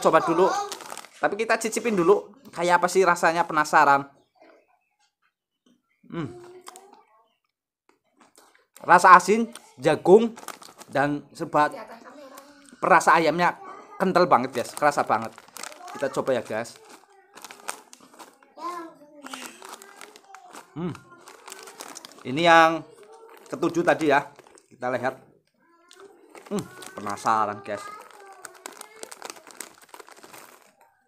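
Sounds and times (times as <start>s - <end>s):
plastic snack packet crinkling: 0.0s - 2.1s, 6.4s - 7.0s, 8.2s - 13.4s, 14.1s - 25.2s, 25.8s - 31.0s.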